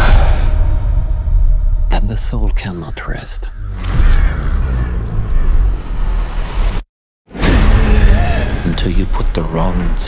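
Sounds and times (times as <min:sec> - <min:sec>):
heavy cinematic hit: 0:07.3 - 0:09.4.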